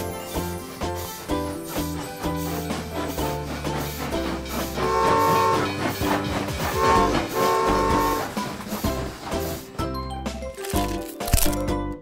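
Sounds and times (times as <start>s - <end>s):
cartoon toy train chugging: 0.0s - 9.8s
toy train whistle: 4.8s - 5.9s, 6.7s - 8.3s.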